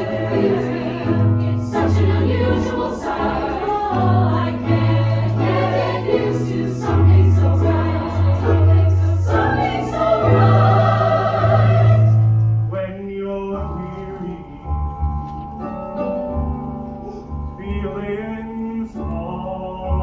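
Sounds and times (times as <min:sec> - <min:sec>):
choir singing in harmony: 0:00.0 - 0:12.4
amplified stage piano: 0:00.0 - 0:20.0.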